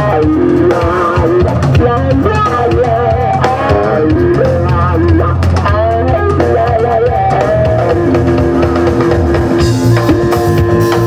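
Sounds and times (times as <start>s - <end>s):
drum kit: 0.0s - 11.0s
electric guitar solo: 0.0s - 11.0s.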